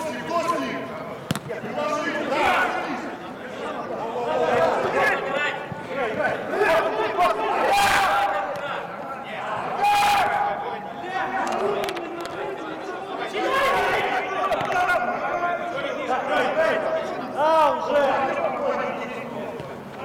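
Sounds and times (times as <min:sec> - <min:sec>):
players shouting: 0:00.0 - 0:20.0
loud drawn-out shouts: 0:01.6 - 0:18.4.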